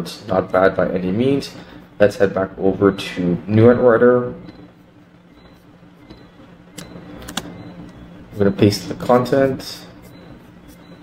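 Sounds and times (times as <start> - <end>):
low steady hum: 0.0 - 11.0
keyboard and mouse clicks: 6.8 - 7.6.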